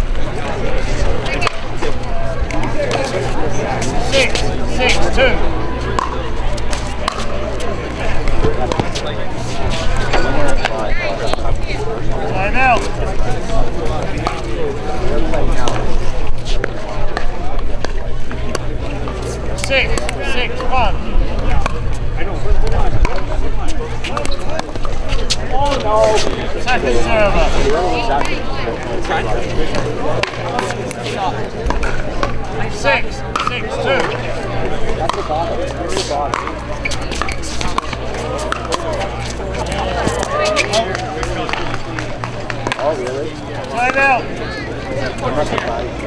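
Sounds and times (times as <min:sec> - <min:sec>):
people chatting: 0:00.0 - 0:46.0
paddles hitting plastic ball: 0:36.3 - 0:38.8.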